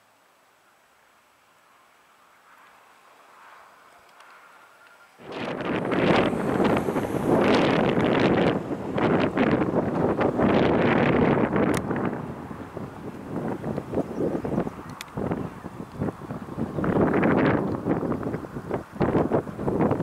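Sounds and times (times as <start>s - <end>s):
gusty wind buffeting microphone: 5.2s - 20.0s.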